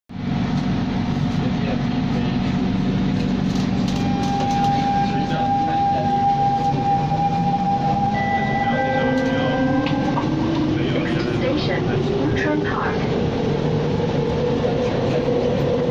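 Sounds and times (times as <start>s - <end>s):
high steady whine: 0.1s - 15.9s
metro train rumble and hum: 0.1s - 15.9s
whine rising in pitch: 3.8s - 11.3s.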